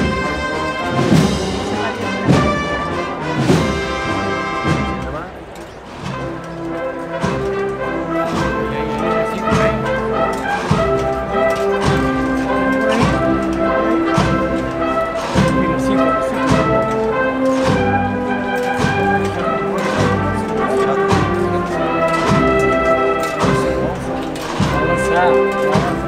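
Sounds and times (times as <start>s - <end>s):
brass sustained melody: 0.0s - 5.4s, 6.0s - 26.0s
steady drum stroke: 0.0s - 26.0s
wind band playing a march: 0.0s - 26.0s.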